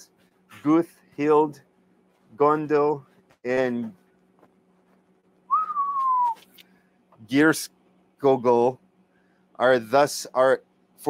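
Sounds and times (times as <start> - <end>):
whistle-like tone sliding down: 5.5 - 6.4.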